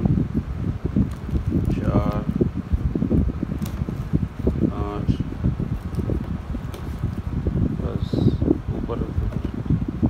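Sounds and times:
fan noise buffeting microphone: 0:00.0 - 0:10.0.

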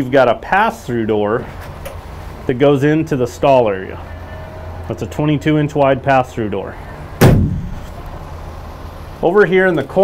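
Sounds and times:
steady low hum: 0:00.0 - 0:10.0
metal door banging shut: 0:07.2 - 0:08.0.

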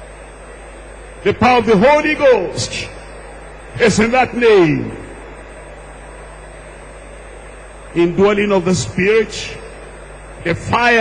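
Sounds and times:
sound system hum and hiss: 0:00.0 - 0:11.0
echo of man's voice: 0:01.2 - 0:03.0, 0:03.8 - 0:05.2, 0:08.0 - 0:09.6, 0:10.4 - 0:11.0.

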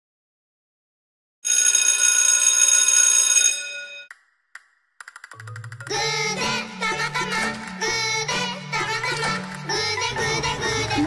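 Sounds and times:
bell-like ringing: 0:01.5 - 0:04.1.

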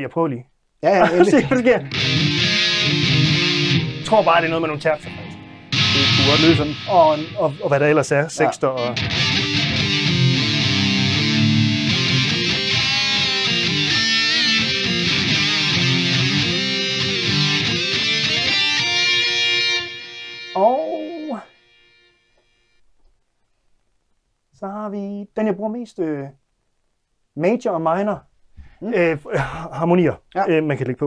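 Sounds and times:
distorted electric guitar with harmony: 0:01.0 - 0:22.8.

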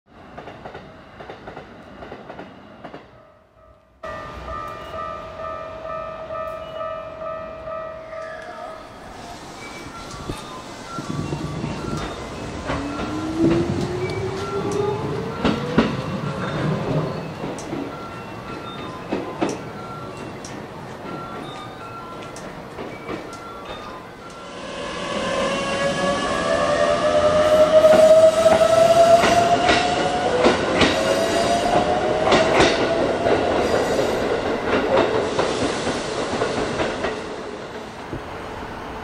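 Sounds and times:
train passing level crossing: 0:00.3 - 0:39.0
rumbling train wheels: 0:09.4 - 0:39.0.

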